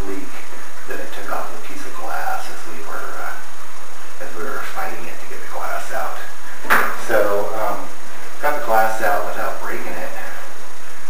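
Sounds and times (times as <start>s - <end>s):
man speaking: 0.0s - 3.5s, 4.2s - 10.6s.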